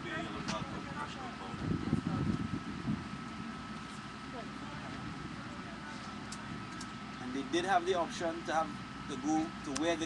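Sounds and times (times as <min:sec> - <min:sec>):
faint distant voices: 0:04.0 - 0:10.0.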